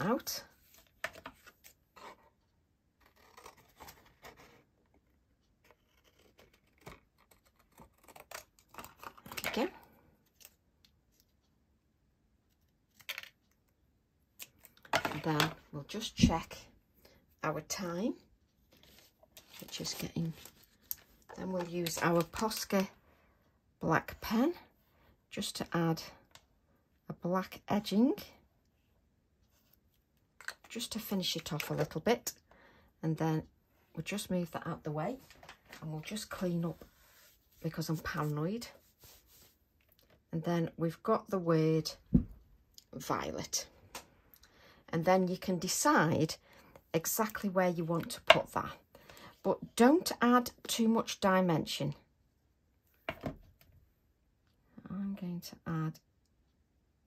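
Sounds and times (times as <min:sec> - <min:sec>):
card rustling: 0:03.0 - 0:10.6, 0:18.7 - 0:22.8.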